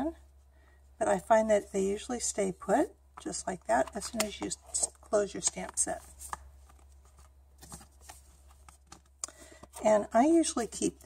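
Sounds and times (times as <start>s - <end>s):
plastic case and paper rustling: 3.2s - 10.1s.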